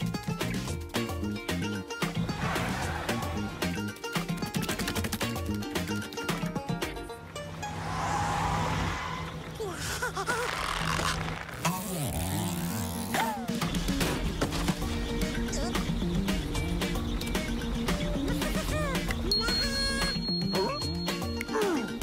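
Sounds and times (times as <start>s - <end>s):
background music with steady beat: 0.0s - 7.5s, 13.4s - 22.0s
low truck engine hum: 5.2s - 11.7s, 12.4s - 21.4s.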